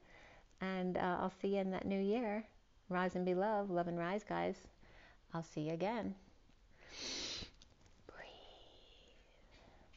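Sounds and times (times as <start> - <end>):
woman whispering: 8.1 - 9.6.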